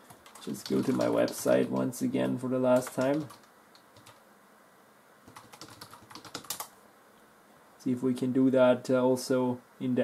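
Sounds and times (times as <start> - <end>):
typing on keyboard: 0.1 - 1.9, 2.7 - 4.2, 5.3 - 6.7.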